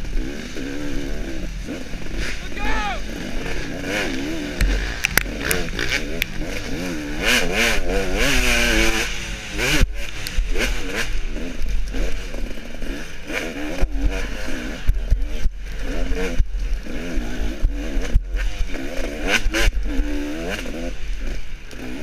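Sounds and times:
dirt bike engine revving: 0.0 - 22.0.

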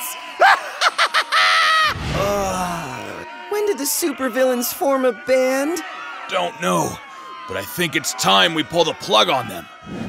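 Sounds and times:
man cackling laugh: 0.4 - 1.9.

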